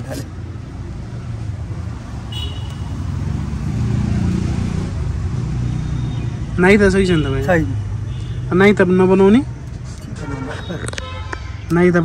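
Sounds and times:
vehicle engine rumble passing: 0.0s - 7.0s.

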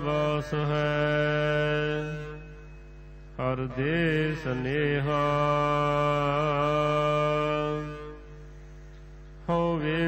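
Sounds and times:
person chanting: 0.0s - 2.8s, 3.4s - 8.5s, 9.4s - 10.0s
faint steady held tone: 0.0s - 10.0s.

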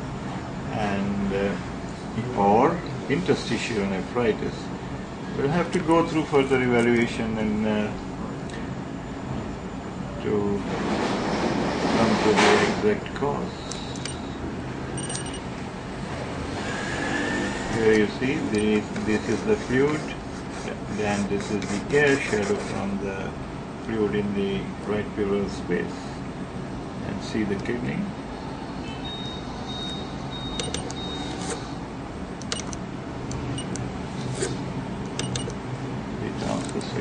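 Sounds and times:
low mechanical hum: 0.0s - 37.0s.

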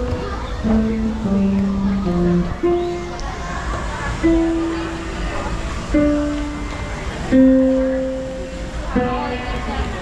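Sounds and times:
piano stair notes: 0.0s - 10.0s.

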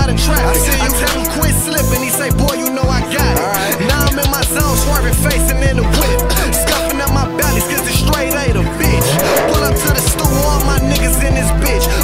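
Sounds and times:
hip-hop beat with vocals: 0.0s - 12.0s
car tyre screech effect: 8.9s - 10.8s.

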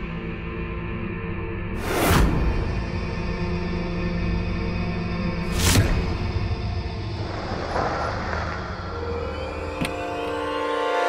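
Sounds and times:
dramatic background music: 0.0s - 11.0s
car engine rumble: 6.2s - 10.8s.

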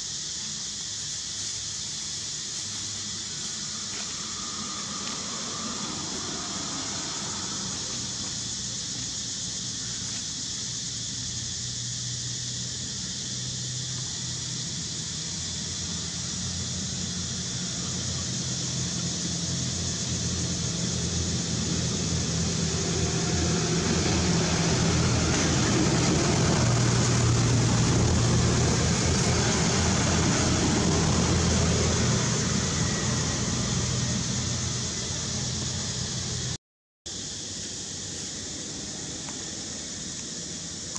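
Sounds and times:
high hiss: 0.0s - 40.9s.

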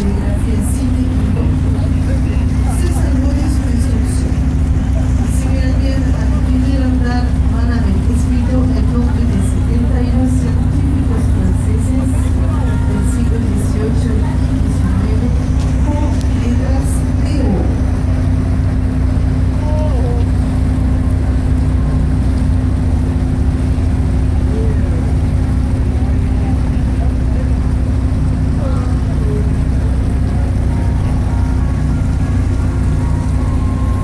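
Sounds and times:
boat engine humming: 0.0s - 34.0s
passenger voices: 0.0s - 34.0s.

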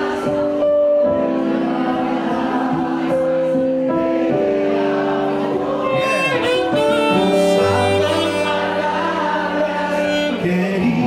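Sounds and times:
guitar: 0.0s - 11.0s
keyboard: 0.0s - 11.0s
saxophone melody: 5.7s - 11.0s.

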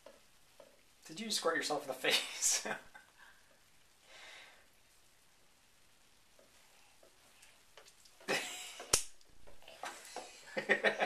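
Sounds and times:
laughter: 8.3s - 8.9s, 10.4s - 11.0s.

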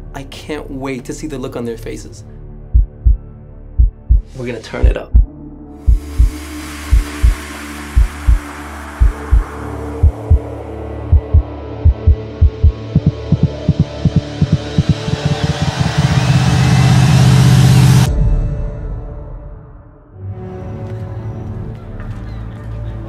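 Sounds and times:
heartbeat-like low thumps: 2.7s - 7.4s, 8.0s - 18.1s
rising cinematic rush: 5.2s - 20.1s.

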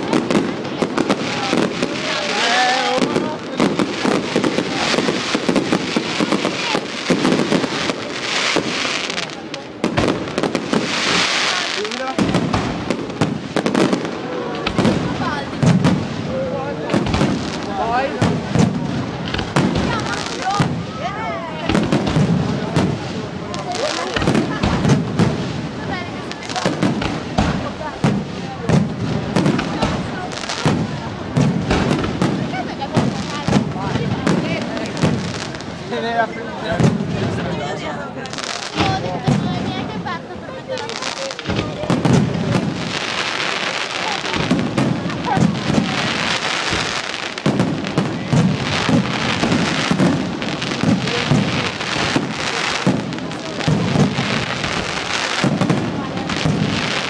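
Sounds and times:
firework bursts and bangs: 0.0s - 57.0s
firework crackling: 0.0s - 57.0s.

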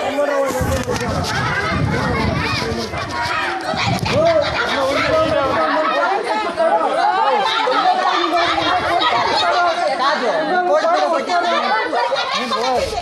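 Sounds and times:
people quarreling with overlapping voices: 0.0s - 13.0s.

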